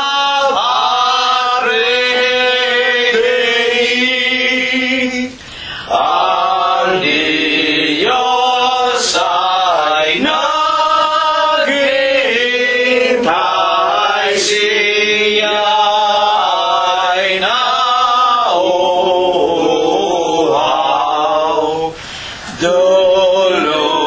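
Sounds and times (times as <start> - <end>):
voices singing a hymn: 0.0 - 24.0.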